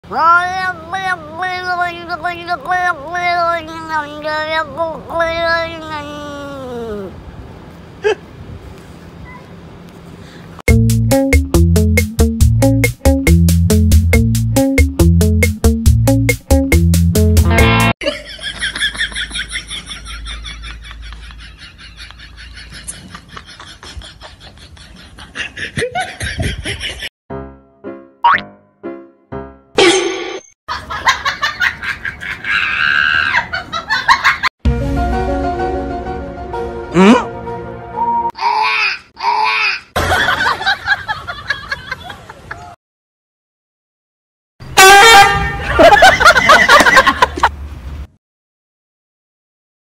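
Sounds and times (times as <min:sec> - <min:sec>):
cat meowing: 0:00.0 - 0:07.1
playful music: 0:10.7 - 0:18.0, 0:27.3 - 0:29.8, 0:34.7 - 0:38.3
cartoon boing: 0:28.2 - 0:28.5.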